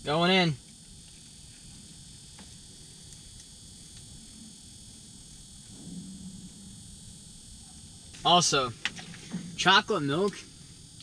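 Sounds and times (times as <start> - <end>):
background hiss: 0.0 - 11.0
faint low rumble: 0.7 - 11.0.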